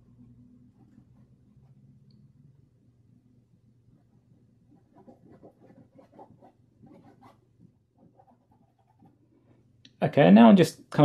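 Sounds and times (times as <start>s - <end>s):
paintbrush strokes on canvas: 4.8s - 7.4s.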